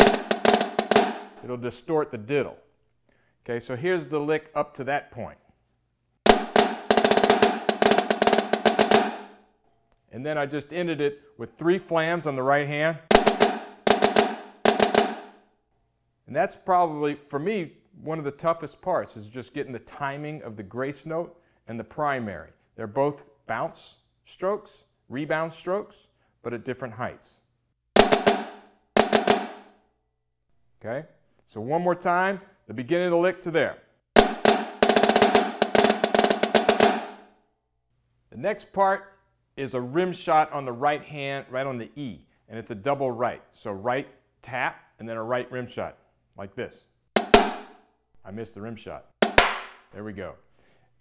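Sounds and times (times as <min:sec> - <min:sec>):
snare drum rudimental phrase: 0:00.0 - 0:01.5, 0:06.3 - 0:09.3, 0:13.1 - 0:15.3, 0:28.0 - 0:29.6, 0:34.2 - 0:37.2, 0:47.2 - 0:47.7, 0:49.2 - 0:49.7.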